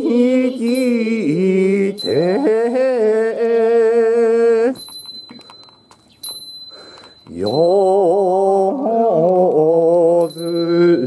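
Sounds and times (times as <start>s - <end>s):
hymn chanted in wavering notes: 0.0s - 4.7s
small hand bell ringing: 0.6s - 3.6s, 4.6s - 8.2s, 10.2s - 11.0s.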